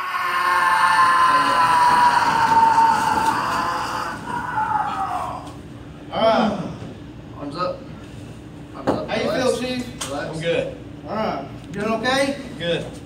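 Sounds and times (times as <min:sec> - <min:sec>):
man yelling: 0:00.0 - 0:05.5.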